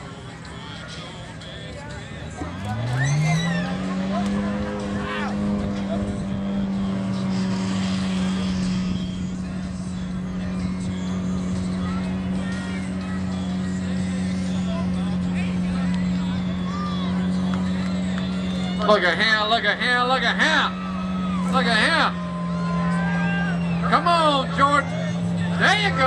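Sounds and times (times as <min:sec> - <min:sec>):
truck engine revving: 0:00.0 - 0:26.0.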